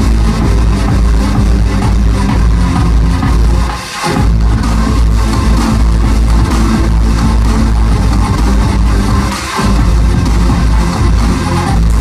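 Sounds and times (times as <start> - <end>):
heavy steady bass: 0.0 - 12.0.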